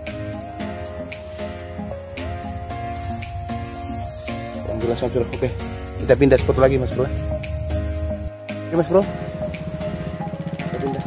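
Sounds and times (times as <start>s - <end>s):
background music of held tones: 0.0s - 11.0s
high-pitched insect drone: 0.0s - 11.0s
person speaking: 2.3s - 7.4s.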